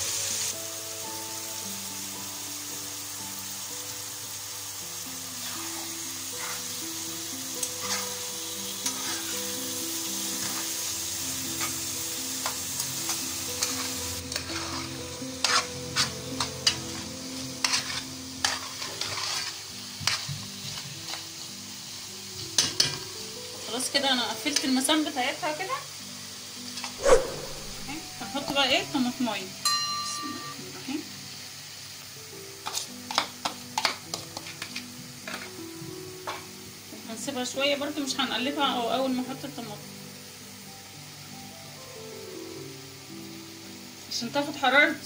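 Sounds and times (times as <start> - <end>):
liver sizzling in hot oil: 0.0 - 45.0
soft background melody: 0.0 - 45.0
metal spoon scraping pan: 7.8 - 8.2, 8.8 - 9.6, 13.6 - 16.8, 17.6 - 19.5.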